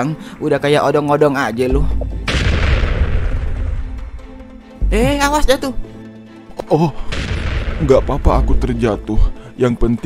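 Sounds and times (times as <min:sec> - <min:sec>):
deep boom: 0:01.8 - 0:04.4.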